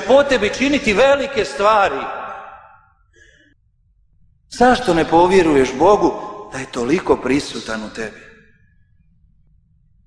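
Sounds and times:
man speaking: 0:00.0 - 0:02.3, 0:04.5 - 0:08.3
faint breath: 0:03.0 - 0:03.8.

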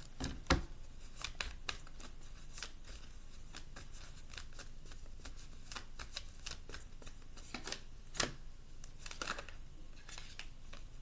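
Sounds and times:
cards being shuffled: 0:01.0 - 0:10.9.

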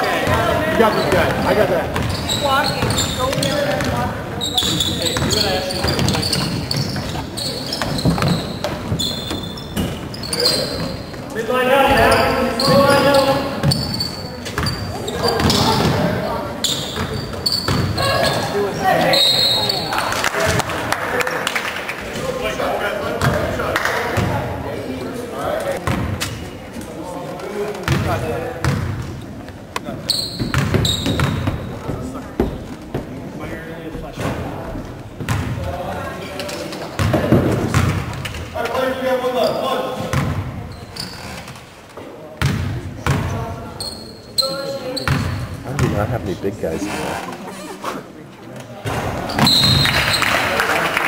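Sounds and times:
crowd and player voices: 0:00.0 - 0:51.0.

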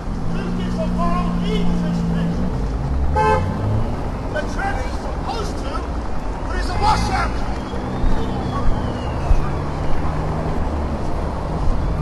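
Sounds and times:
traffic rumble: 0:00.0 - 0:12.0
vehicle horn: 0:03.1 - 0:03.7
scattered voices: 0:04.3 - 0:09.7.

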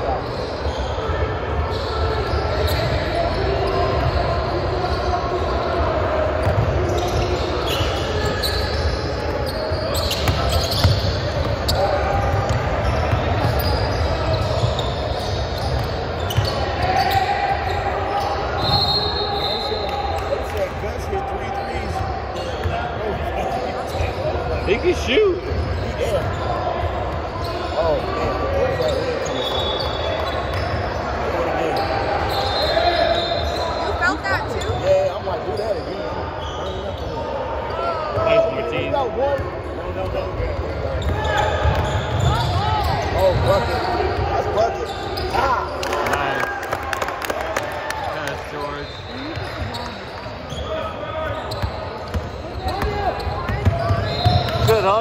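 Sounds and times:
sneaker squeaks: 0:00.0 - 0:46.4, 0:48.0 - 0:55.0
echoing chatter of people: 0:00.0 - 0:55.0
basketball bouncing on wooden court: 0:06.4 - 0:07.3, 0:10.0 - 0:13.8, 0:51.5 - 0:54.9.

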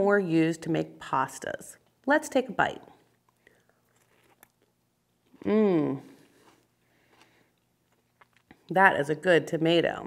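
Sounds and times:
person humming: 0:05.4 - 0:06.2.

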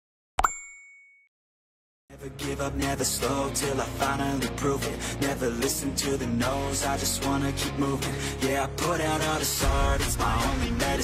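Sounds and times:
high ringing ding: 0:00.4 - 0:01.3.

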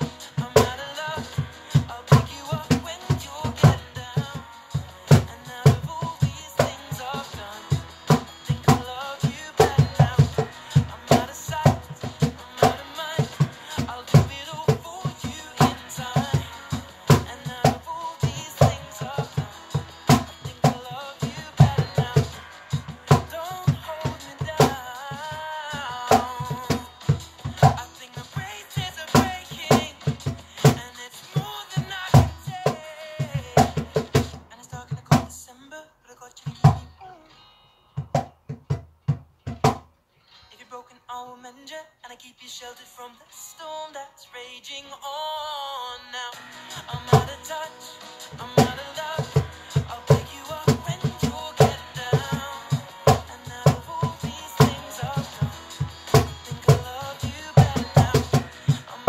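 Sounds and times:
recorded pop song: 0:00.0 - 0:59.0
cajon thumps and slaps: 0:11.1 - 0:22.4, 0:26.1 - 0:28.5, 0:29.1 - 0:30.9, 0:33.4 - 0:34.4, 0:35.0 - 0:35.3, 0:38.0 - 0:39.9, 0:48.5 - 0:58.5.

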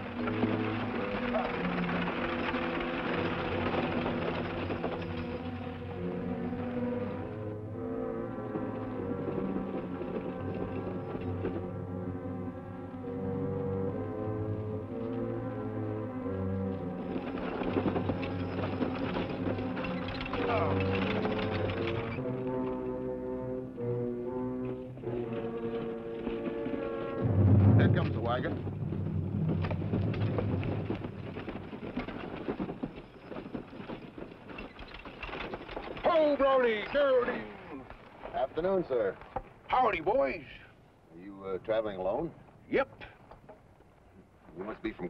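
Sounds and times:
galloping horse hoofbeats: 0:00.0 - 0:23.0, 0:24.4 - 0:40.6
orchestral western score: 0:00.0 - 0:45.0.

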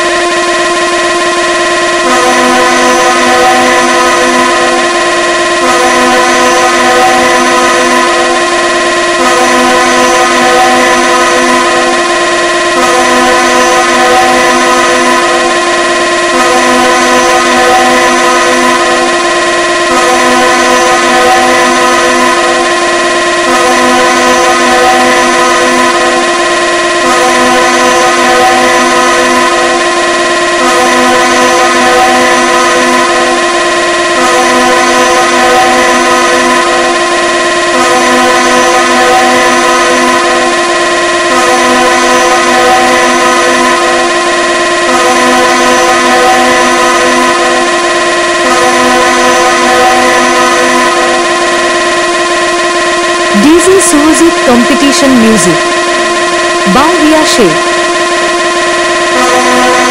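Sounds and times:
electronic horn dance music: 0:05.6 - 0:08.0, 0:53.3 - 0:55.7, 0:56.6 - 0:57.6.

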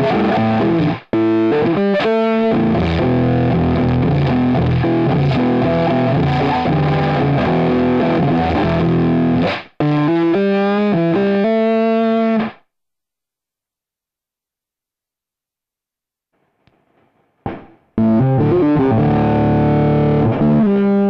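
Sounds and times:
distorted electric guitar: 0:00.0 - 0:12.7, 0:16.4 - 0:21.0.

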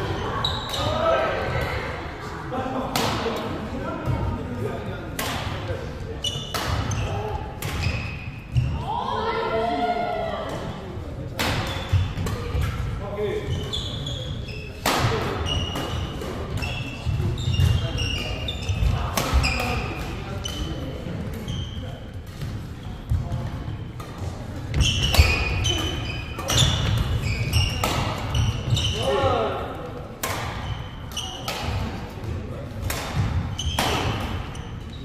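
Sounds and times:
shoe squeaks: 0:00.3 - 0:01.0, 0:06.2 - 0:07.2, 0:13.4 - 0:14.8, 0:15.4 - 0:20.7, 0:21.4 - 0:22.0, 0:24.8 - 0:29.3, 0:30.6 - 0:31.5, 0:33.5 - 0:35.0
racket striking shuttlecock: 0:26.4 - 0:28.3, 0:32.8 - 0:34.3.

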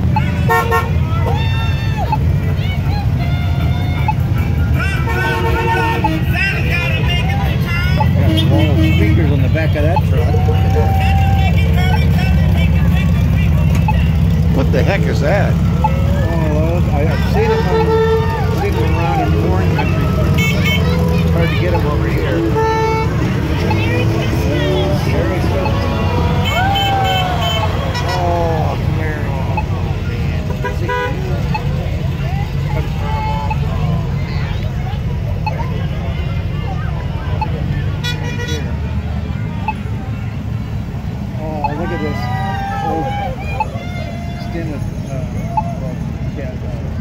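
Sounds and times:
car horns tooting: 0:00.0 - 0:34.2, 0:37.4 - 0:39.0
low car engine rumble: 0:00.0 - 0:47.0
spectators' voices: 0:00.0 - 0:47.0.

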